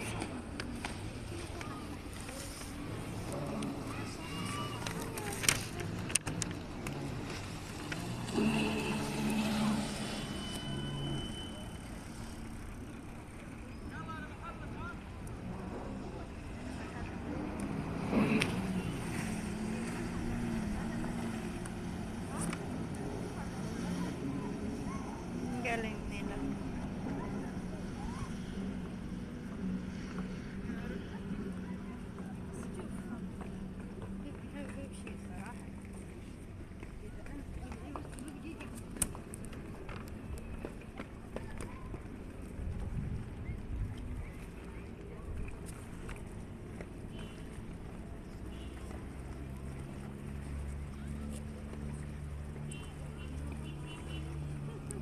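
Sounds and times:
voices talking: 0.0 - 42.6.

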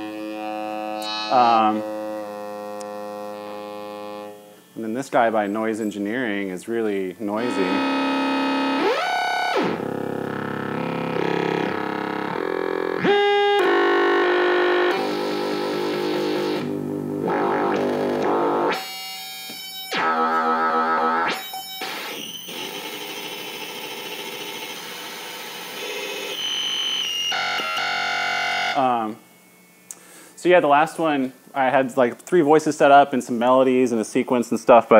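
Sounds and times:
gritty synthesizer tones: 0.0 - 29.2.

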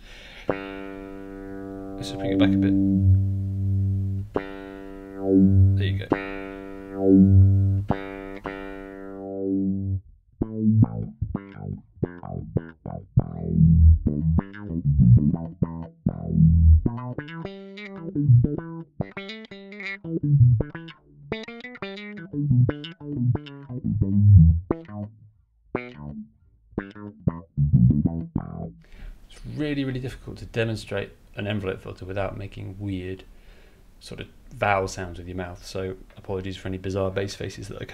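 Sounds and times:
electric bass riff with auto-wah: 0.5 - 28.9.

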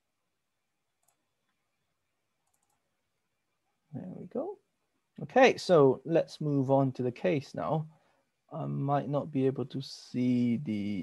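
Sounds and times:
computer mouse clicks: 1.0 - 1.6, 2.4 - 2.8.

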